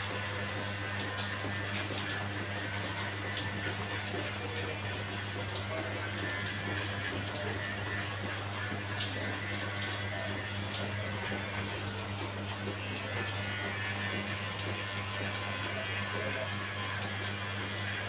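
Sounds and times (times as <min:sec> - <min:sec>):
hair clipper buzzing: 0:00.0 - 0:18.0.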